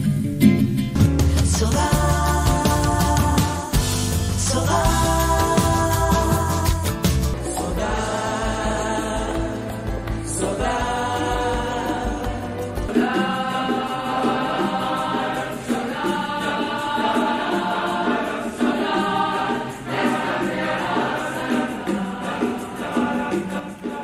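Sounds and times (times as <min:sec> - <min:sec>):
deep bass: 0:01.0 - 0:12.9
choir singing held chords: 0:01.5 - 0:24.0.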